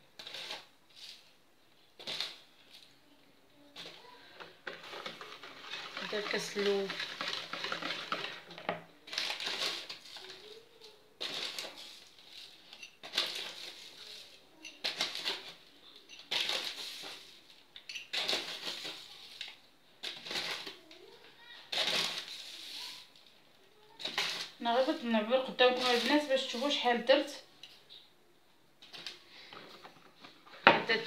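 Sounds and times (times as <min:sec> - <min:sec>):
paper bag rustling: 0:03.8 - 0:15.6, 0:16.3 - 0:17.5, 0:25.6 - 0:26.8
glass scooping semolina: 0:04.7 - 0:10.5, 0:11.2 - 0:19.6.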